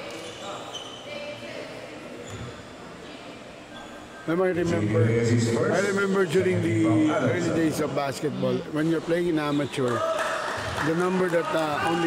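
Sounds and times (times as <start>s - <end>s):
short high squeaks: 0.1s - 1.4s.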